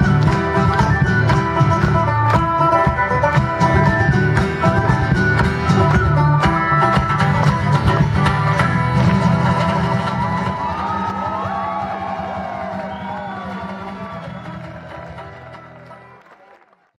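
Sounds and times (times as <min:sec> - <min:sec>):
banjo: 0:00.0 - 0:10.9
folk band guitars: 0:00.0 - 0:16.3
audience cheering and whooping: 0:09.8 - 0:16.9.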